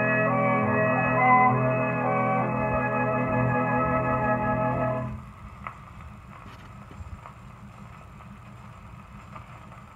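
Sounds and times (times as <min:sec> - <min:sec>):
band music: 0:00.0 - 0:05.2
record low rumble: 0:00.0 - 0:09.9
record surface hiss: 0:00.0 - 0:09.9
soft repeating record clicks: 0:05.2 - 0:09.9.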